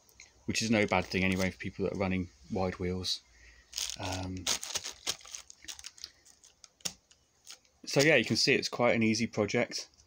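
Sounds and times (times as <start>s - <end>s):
plastic wrapping crinkling: 0.5s - 2.0s, 3.7s - 8.4s.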